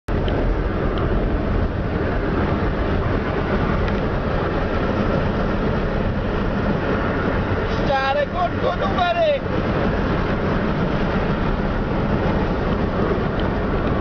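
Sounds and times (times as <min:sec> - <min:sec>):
road and wind noise of moving car: 0:00.0 - 0:14.0.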